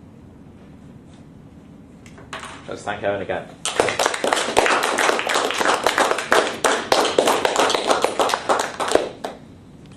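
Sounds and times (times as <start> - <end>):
audience applauding: 3.6 - 9.4.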